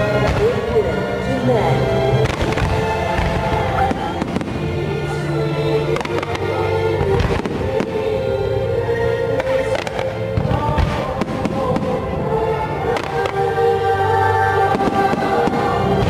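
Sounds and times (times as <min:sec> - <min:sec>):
fireworks bursting: 0:00.0 - 0:16.0
loud show music: 0:00.0 - 0:16.0.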